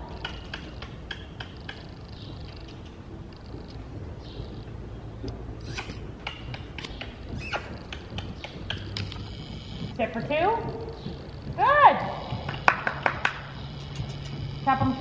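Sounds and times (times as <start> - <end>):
hoofbeats on soft dirt: 0.0 - 15.0.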